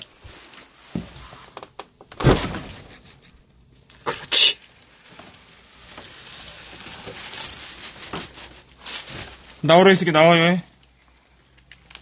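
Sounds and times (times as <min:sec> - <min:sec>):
heavy door thump: 0:02.1 - 0:03.0.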